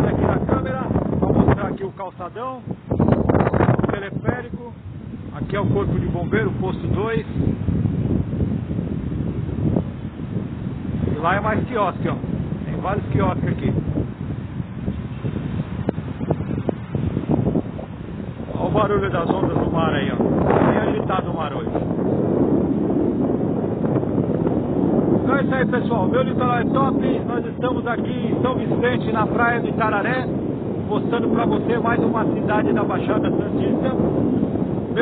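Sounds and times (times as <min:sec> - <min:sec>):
rough sea surf breaking: 0:00.0 - 0:35.0
wind buffeting microphone: 0:00.0 - 0:35.0.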